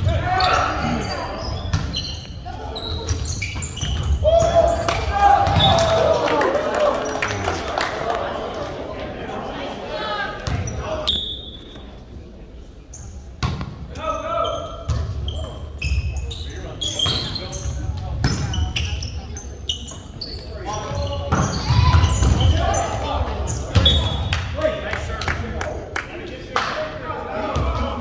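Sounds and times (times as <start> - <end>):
voices of players and spectators: 0.0 - 28.0
sneakers squeaking on hardwood: 0.3 - 5.9, 12.9 - 24.2
volleyball hits echoing: 3.8 - 6.6.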